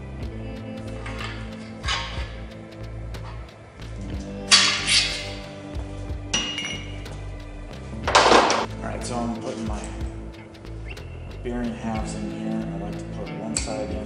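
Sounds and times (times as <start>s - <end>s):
background music: 0.0s - 14.0s
metal clinking on engine block: 6.4s - 7.0s.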